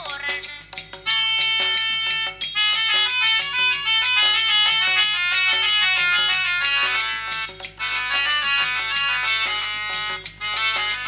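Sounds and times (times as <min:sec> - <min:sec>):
harmonium melody: 0:01.0 - 0:11.0.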